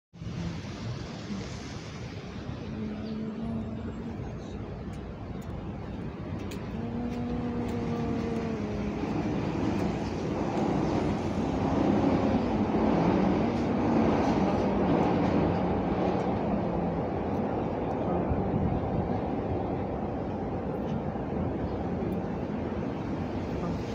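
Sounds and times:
steady road noise: 0:00.1 - 0:23.9.

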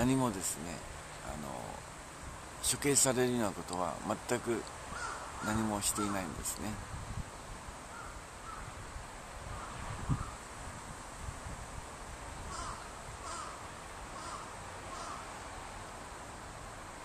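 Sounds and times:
steady background hiss: 0:00.0 - 0:17.0
short bird calls: 0:04.9 - 0:06.3, 0:12.5 - 0:13.6, 0:14.2 - 0:15.4.

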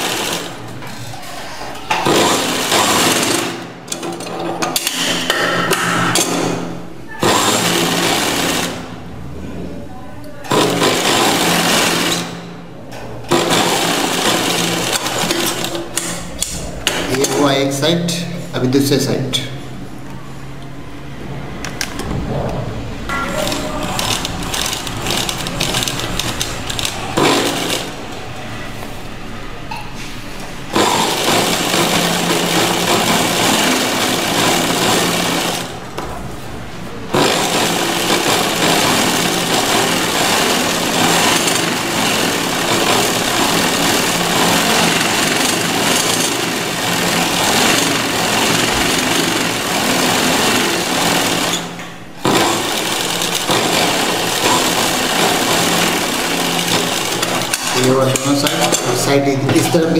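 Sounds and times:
sewing machine stitching: 0:00.0 - 0:04.9, 0:07.1 - 0:09.0, 0:10.5 - 0:12.5, 0:13.3 - 0:17.5, 0:23.1 - 0:28.2, 0:30.7 - 0:35.8, 0:37.1 - 0:59.0.

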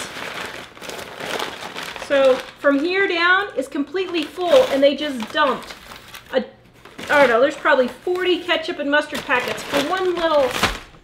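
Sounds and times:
paper bag rustling: 0:00.0 - 0:11.0.

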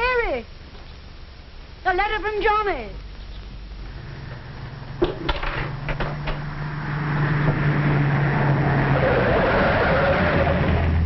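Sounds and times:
car engine approaching: 0:03.7 - 0:11.0
sharp knocks: 0:05.0 - 0:06.5.

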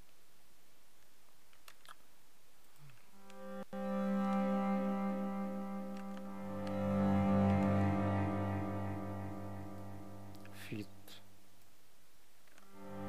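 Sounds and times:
bowed bass notes: 0:03.1 - 0:11.5, 0:12.6 - 0:13.0.

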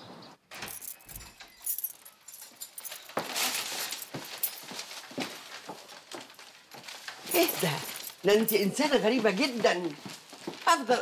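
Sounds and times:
footsteps on hard floor: 0:02.5 - 0:10.7.

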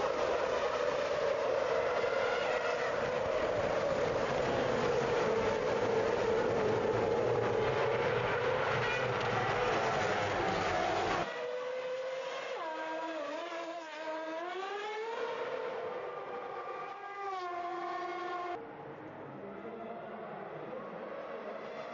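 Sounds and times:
racing car downshifting and accelerating: 0:00.0 - 0:21.9
racing car engines droning: 0:00.0 - 0:21.9.

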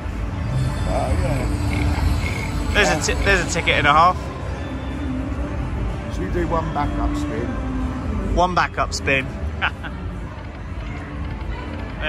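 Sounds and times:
crowd murmur: 0:00.0 - 0:05.5
slot machine electronic sounds: 0:00.4 - 0:04.3.

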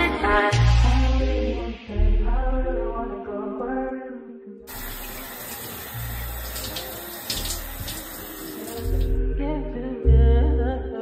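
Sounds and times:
shower spray hissing: 0:04.7 - 0:09.1.

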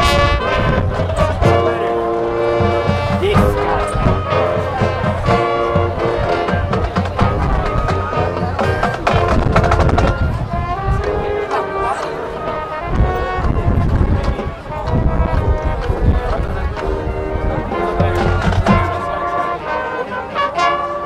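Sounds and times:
drum line: 0:00.0 - 0:19.4
brass section long chords: 0:00.0 - 0:21.0
marching band playing: 0:00.0 - 0:21.0.

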